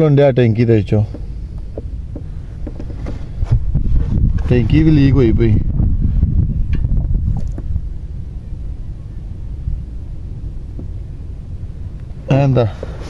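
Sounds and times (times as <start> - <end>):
wind buffeting microphone: 0.9 - 13.0.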